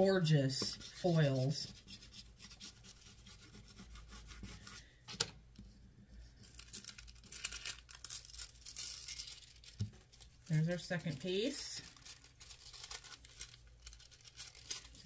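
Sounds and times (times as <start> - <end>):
scratchy rubbing of foil: 0.7 - 4.8, 6.4 - 15.0
thin foil crinkling: 6.4 - 15.0.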